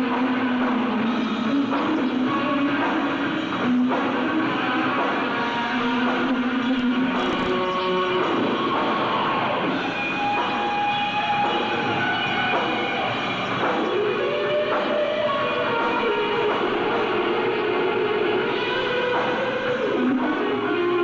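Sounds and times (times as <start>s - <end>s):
hard rock band playing: 1.5s - 19.9s.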